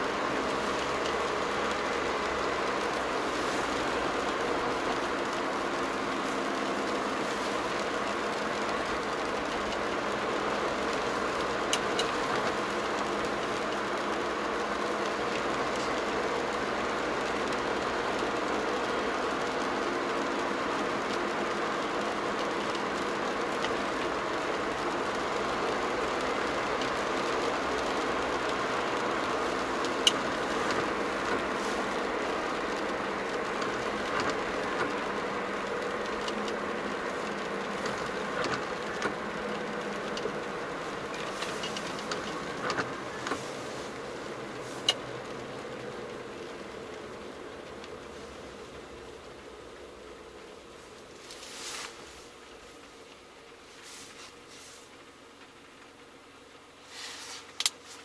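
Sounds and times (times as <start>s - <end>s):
car engine and tyre noise: 0.0s - 58.0s.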